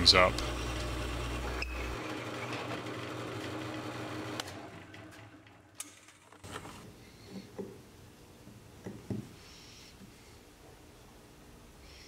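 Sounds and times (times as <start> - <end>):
drill press running: 0.0 - 6.8.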